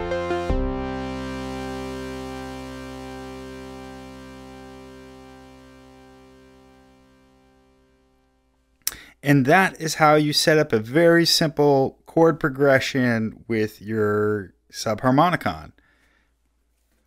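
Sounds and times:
sustained synthesizer chord: 0.0s - 8.8s.

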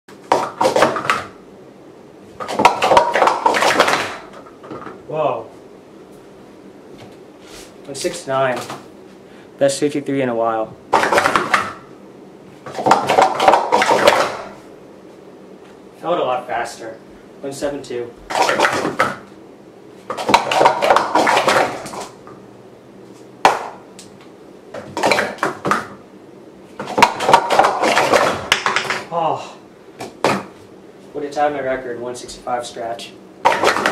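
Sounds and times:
plastic cups clacking together: 2.4s - 4.2s, 12.7s - 14.4s, 20.1s - 22.1s, 24.8s - 25.8s, 26.8s - 29.1s, 33.5s - 33.9s.

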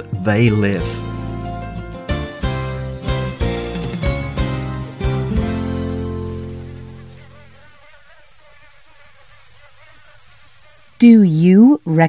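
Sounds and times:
held music chord: 0.0s - 7.1s
mosquito whine: 3.3s - 11.9s.

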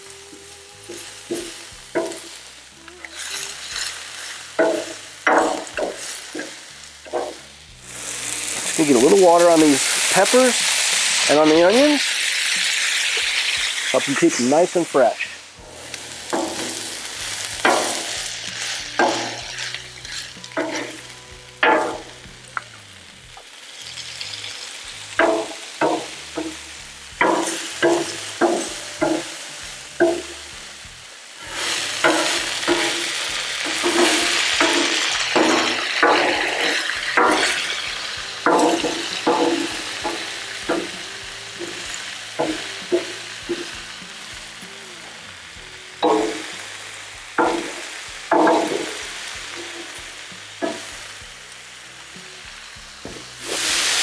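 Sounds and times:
food sizzling on a griddle: 0.0s - 54.0s
metal spatula scraping on steel: 0.2s - 14.8s, 15.6s - 22.2s, 31.4s - 43.9s.

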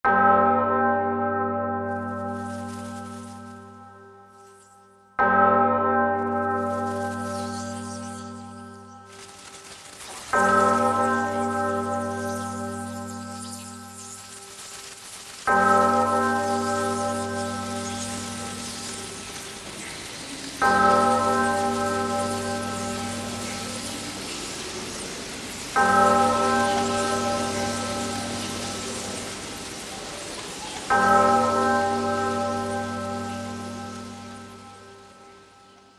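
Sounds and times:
church bell ringing: 0.0s - 35.9s
steady high hiss: 6.6s - 35.9s.

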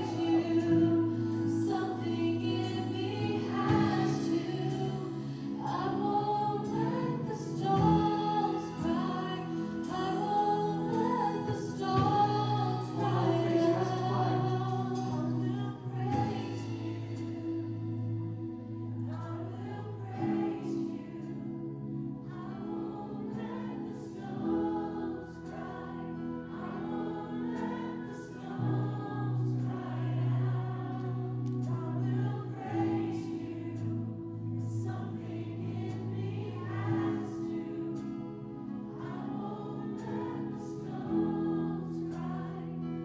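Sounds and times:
men and women singing together: 0.0s - 17.8s, 19.0s - 43.0s
keyboard chords: 0.0s - 43.0s.

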